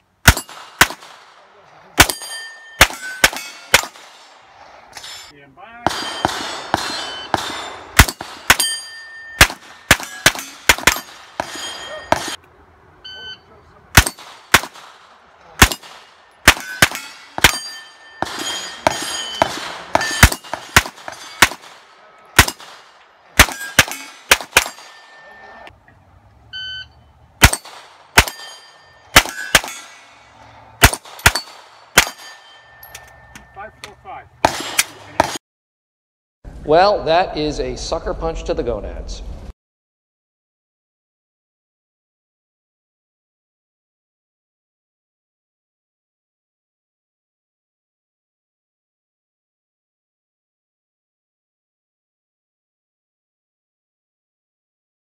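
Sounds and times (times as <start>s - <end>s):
steel plate ringing clang: 2.0s - 4.0s, 5.0s - 12.4s, 16.5s - 21.6s, 23.4s - 25.7s, 27.4s - 30.2s, 30.9s - 33.9s
rapid gunshots: 2.8s - 4.3s, 15.6s - 17.6s, 19.5s - 24.9s, 30.8s - 32.2s
shot timer beep: 13.0s - 13.5s, 26.6s - 27.0s.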